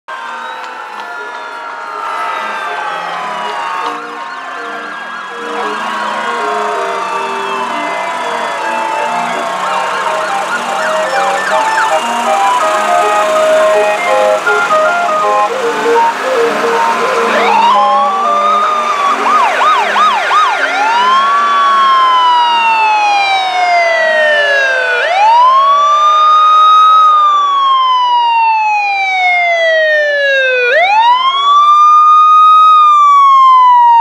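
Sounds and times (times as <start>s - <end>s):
fire truck sirens wailing: 0.1s - 34.0s.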